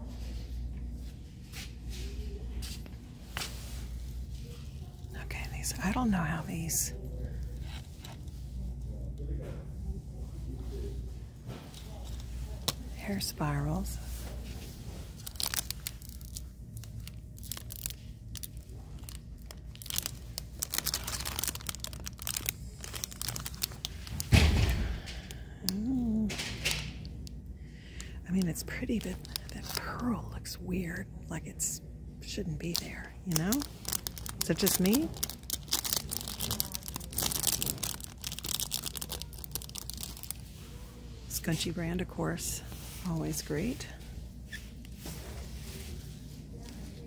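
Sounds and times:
plastic packaging crinkling: 11.8 - 30.4, 32.6 - 40.6.

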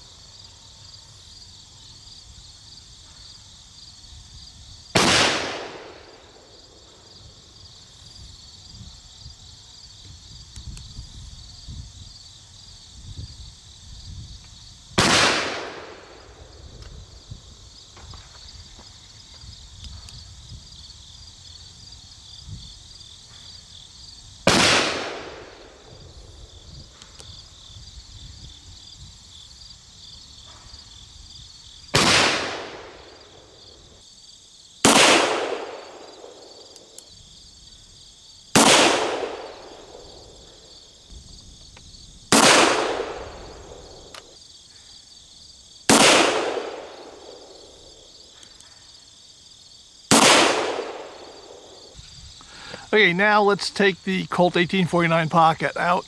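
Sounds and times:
revolver gunshots: 5.0 - 6.1, 15.0 - 16.1, 24.5 - 25.7, 32.0 - 33.0, 34.8 - 36.3, 38.6 - 39.9, 42.3 - 43.4, 45.9 - 47.4, 50.1 - 51.6.

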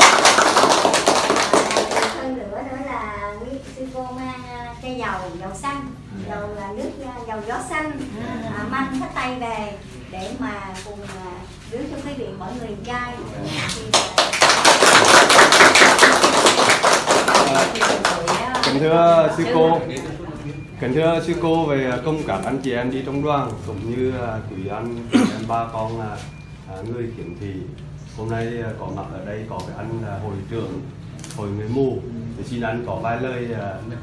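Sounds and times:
crowd applauding: 0.0 - 2.2, 13.9 - 19.0
people clapping: 0.0 - 2.3, 13.7 - 19.1.

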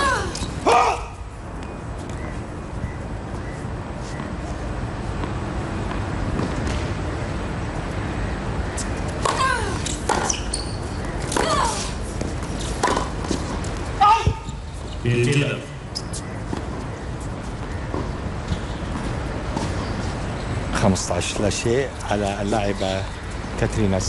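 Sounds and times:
outdoor ambience hiss: 0.0 - 24.0
racket striking tennis ball: 11.2 - 13.5.

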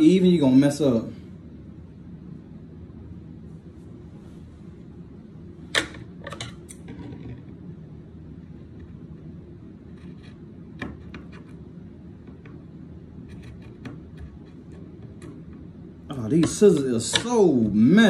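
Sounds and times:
man talking: 0.0 - 1.2, 16.1 - 18.0
low room hum: 0.0 - 18.0.

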